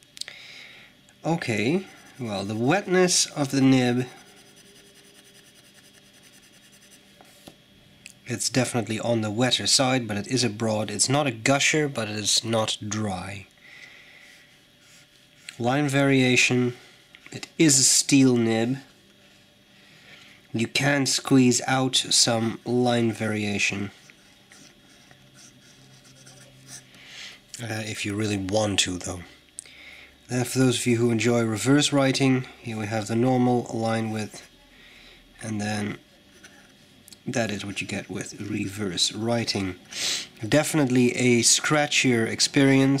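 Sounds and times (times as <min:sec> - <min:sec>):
pen nib scratching on paper: 0:01.7 - 0:03.5, 0:04.1 - 0:07.0, 0:24.2 - 0:26.9.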